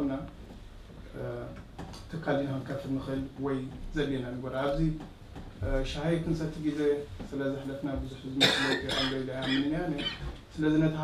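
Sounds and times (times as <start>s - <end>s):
man speaking: 5.6s - 11.0s.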